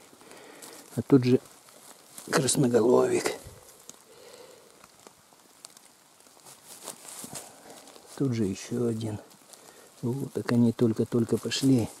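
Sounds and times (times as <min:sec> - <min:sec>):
dry leaves rustling: 0:00.0 - 0:12.0.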